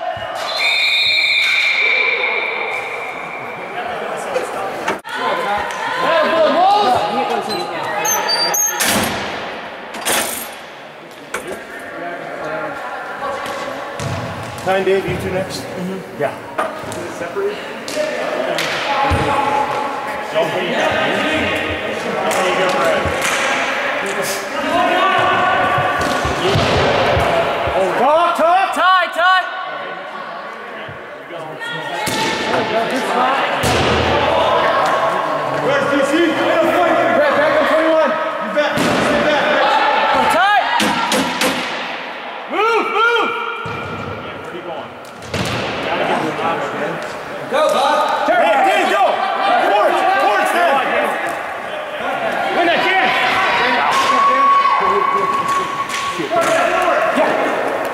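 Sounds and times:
players shouting: 0:00.0 - 0:08.0, 0:17.7 - 0:30.6, 0:31.6 - 0:44.4, 0:45.6 - 0:57.9.

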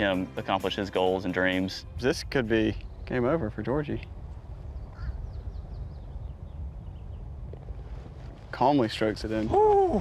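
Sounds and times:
low wind rumble: 0:00.0 - 0:10.0
bird calling: 0:04.6 - 0:07.3.

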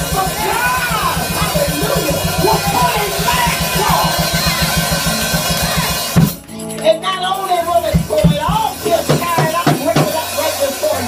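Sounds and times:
live band drum and bass beat: 0:00.0 - 0:11.0.

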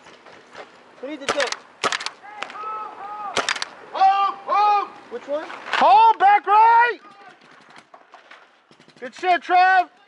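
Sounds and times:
paintball markers firing: 0:01.2 - 0:02.6, 0:03.4 - 0:03.8.

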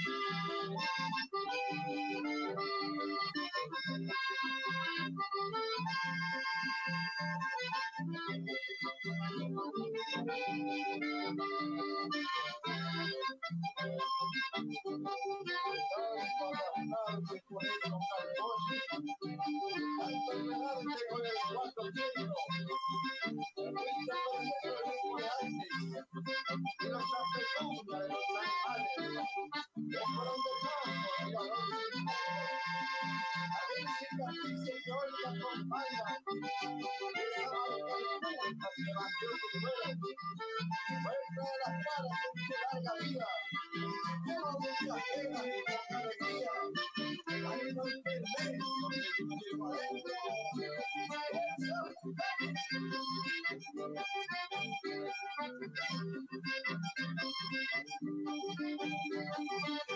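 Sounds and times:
button accordion melody: 0:00.0 - 0:59.9
acoustic guitar: 0:08.4 - 0:59.9.

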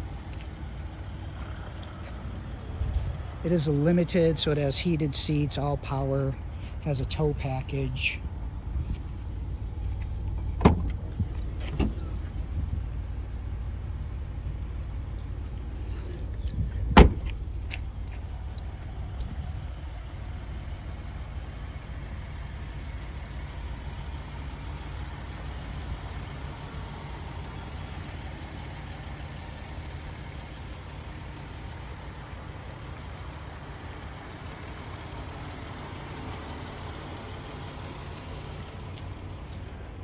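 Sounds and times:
engine idling: 0:00.0 - 0:40.0
liftgate shutting thump: 0:10.6 - 0:11.0, 0:16.9 - 0:17.3.

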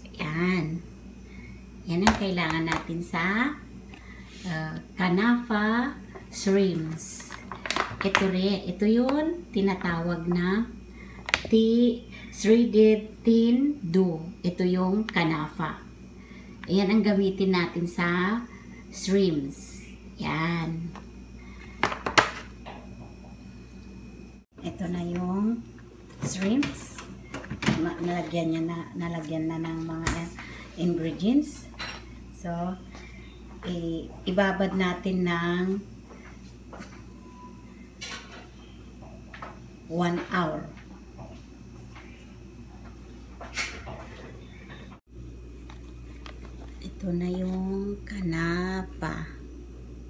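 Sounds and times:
low steady room hum: 0:00.0 - 0:50.0.

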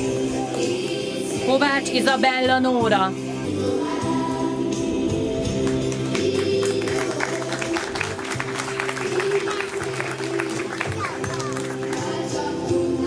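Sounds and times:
music with sung vocals: 0:00.0 - 0:13.0.

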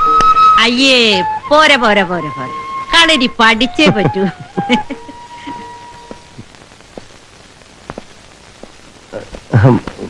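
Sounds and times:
film soundtrack hiss: 0:00.0 - 0:10.0.

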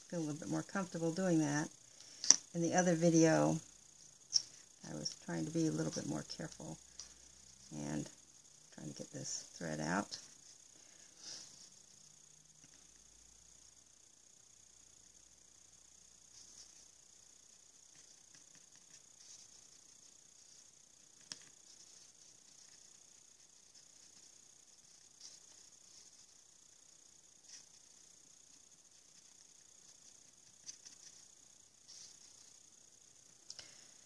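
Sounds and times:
faint steady hiss: 0:00.0 - 0:34.0.

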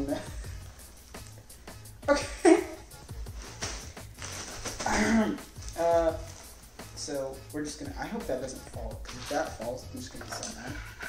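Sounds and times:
background music with low beat: 0:00.0 - 0:11.0
plastic bag rustling: 0:03.0 - 0:07.2, 0:09.0 - 0:11.0.

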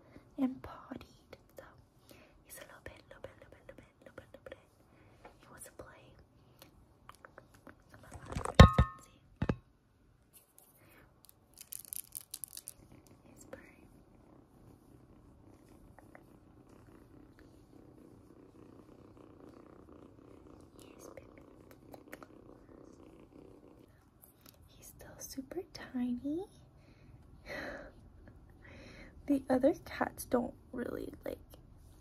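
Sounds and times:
kitten purring: 0:00.0 - 0:09.0, 0:11.6 - 0:26.6.

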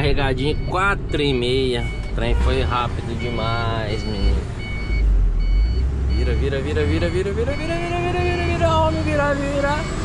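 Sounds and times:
truck engine drone: 0:00.0 - 0:10.0.

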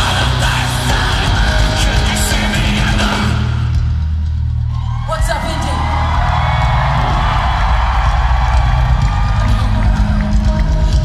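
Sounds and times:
live rock band playing: 0:00.0 - 0:05.0
crowd cheering: 0:04.5 - 0:11.0.

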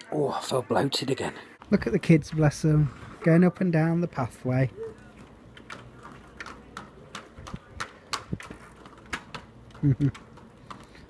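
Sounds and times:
wheels clicking on pavement: 0:04.1 - 0:11.0.

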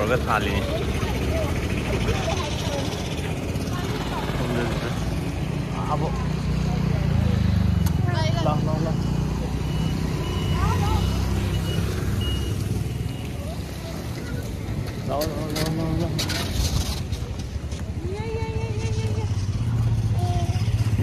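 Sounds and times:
road noise: 0:00.0 - 0:21.0
vehicle engine drone: 0:00.0 - 0:21.0
faint high beeps: 0:07.5 - 0:13.8.

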